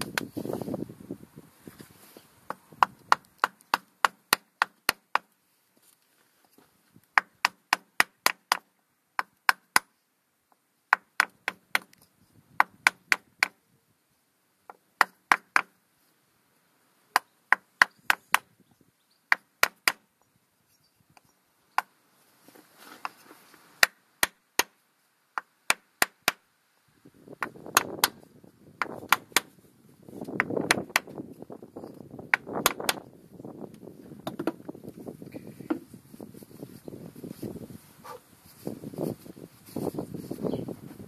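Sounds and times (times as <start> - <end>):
rustling scraping noise: 0.2 - 2.4, 22.2 - 23.8, 34.6 - 41.0
hammer knocking on wood: 34.2 - 34.6.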